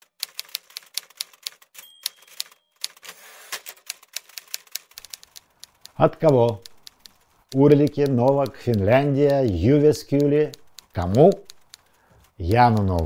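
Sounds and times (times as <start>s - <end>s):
typewriter keys clacking: 0.0s - 13.0s
typewriter bell ringing: 1.6s - 3.3s.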